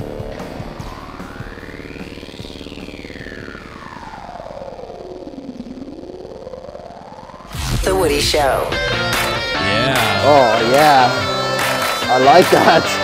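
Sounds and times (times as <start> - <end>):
distorted rock music: 0.0 - 13.0
electronic pitch sweep effect: 0.0 - 13.0.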